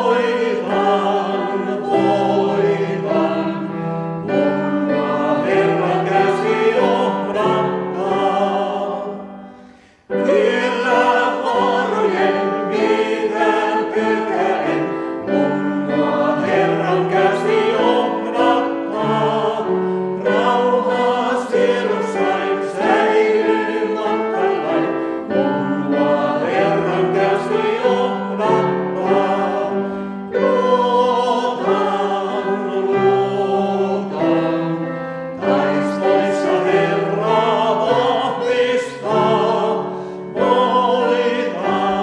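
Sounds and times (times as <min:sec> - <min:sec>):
vocal quartet singing in harmony: 0:00.0 - 0:42.0.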